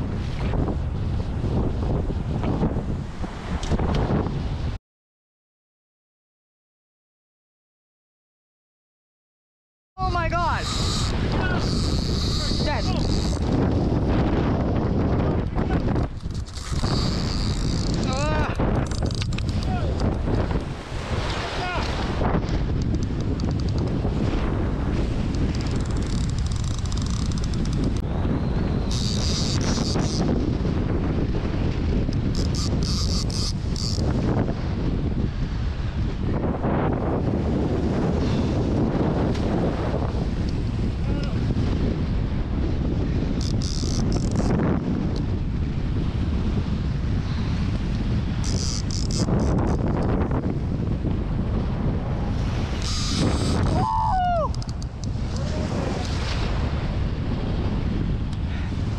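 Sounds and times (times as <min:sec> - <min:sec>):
wind buffeting microphone: 0:00.0 - 0:04.8, 0:10.0 - 0:58.9
surf rushing: 0:10.0 - 0:33.0, 0:50.6 - 0:58.9
high-pitched rasping bursts: 0:10.5 - 0:13.4, 0:16.3 - 0:18.2, 0:28.9 - 0:30.2, 0:32.4 - 0:34.0, 0:48.5 - 0:49.5, 0:52.8 - 0:53.6.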